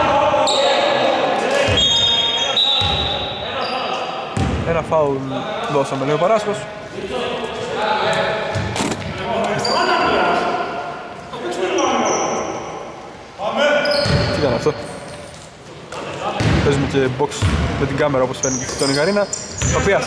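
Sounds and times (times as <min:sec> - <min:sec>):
basketball bouncing on hardwood: 0:17.4 - 0:17.7.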